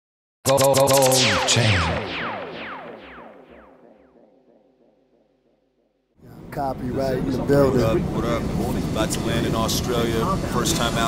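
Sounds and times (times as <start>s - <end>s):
electronic music held chord: 0.5s - 5.1s
falling electronic swoops: 0.5s - 5.8s.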